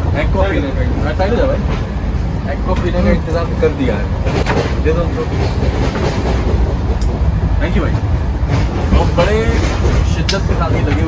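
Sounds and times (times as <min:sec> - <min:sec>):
train rumbling inside coach: 0:00.0 - 0:11.0.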